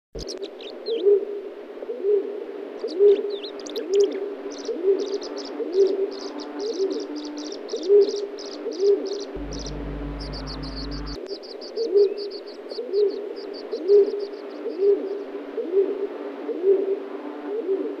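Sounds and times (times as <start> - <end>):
bird cooing: 0.9 - 11.2, 14.8 - 18.0
high-pitched bird chirps: 9.2 - 11.2
low hum: 9.4 - 11.2.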